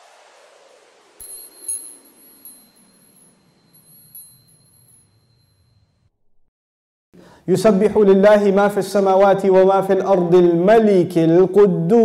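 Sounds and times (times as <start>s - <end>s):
held high tone: 1.2s - 5.6s
chime-like tinkles: 1.2s - 6.0s.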